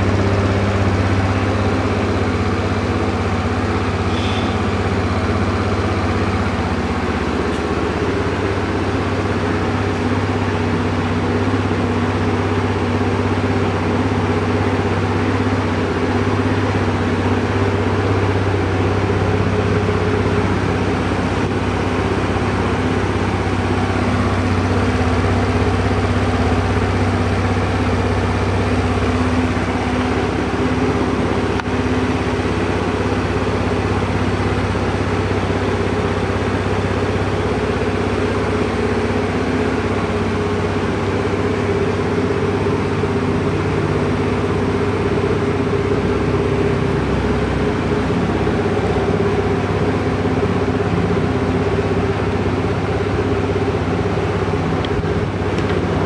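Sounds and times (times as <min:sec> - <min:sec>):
scooter engine idling: 0:00.0 - 0:56.0.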